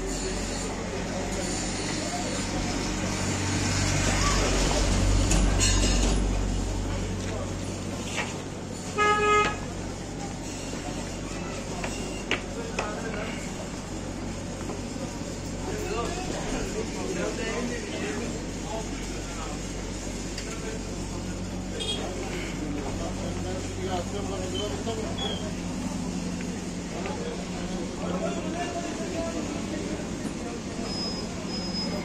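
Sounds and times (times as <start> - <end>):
vehicle rumbling: 0.0 - 32.0
voices in background: 0.0 - 32.0
vehicle horn double toot: 8.9 - 9.6, 21.8 - 22.2.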